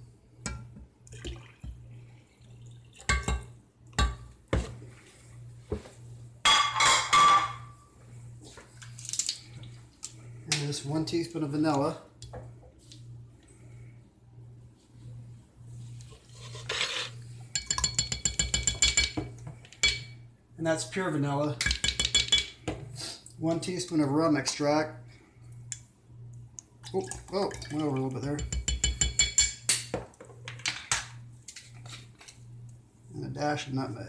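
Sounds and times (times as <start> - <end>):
spoon clinking against glass jar: 17.6 - 19.2, 27.6 - 29.6.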